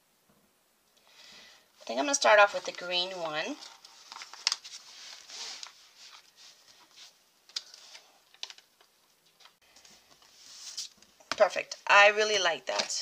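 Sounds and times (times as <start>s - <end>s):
paper rustling: 2.2s - 11.1s.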